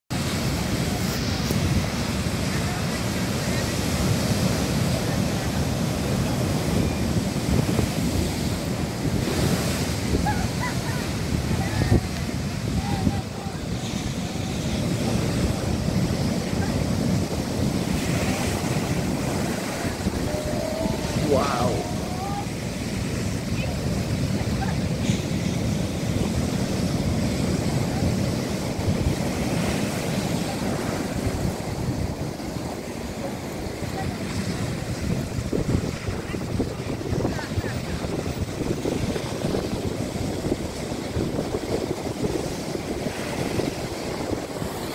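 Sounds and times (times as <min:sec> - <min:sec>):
waves breaking on rocky shore: 0:00.1 - 0:44.9.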